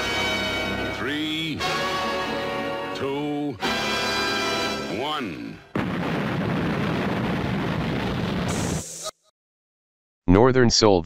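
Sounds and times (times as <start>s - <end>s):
loud burst of noise: 5.7s - 9.1s.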